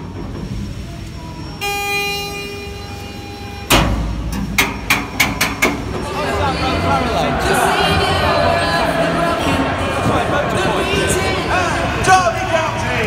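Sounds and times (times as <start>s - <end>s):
steady horn-like tone: 1.6s - 4.8s
sharp knocks: 3.7s - 6.0s
loud bang: 3.7s - 6.1s
football crowd noise and chatter: 4.0s - 13.0s.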